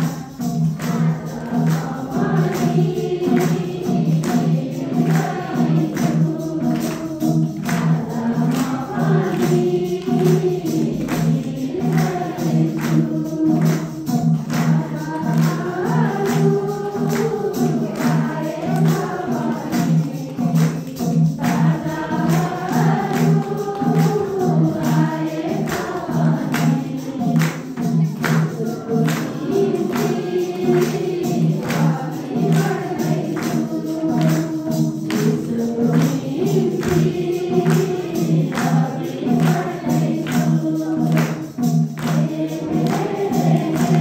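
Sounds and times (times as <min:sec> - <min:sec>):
hand clapping: 0:00.0 - 0:44.0
steady beat: 0:00.0 - 0:44.0
tambourine: 0:00.0 - 0:44.0
voices singing along: 0:00.0 - 0:44.0.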